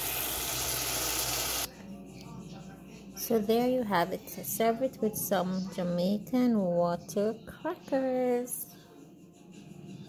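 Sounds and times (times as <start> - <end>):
sauce simmering and sizzling: 0.0 - 1.7.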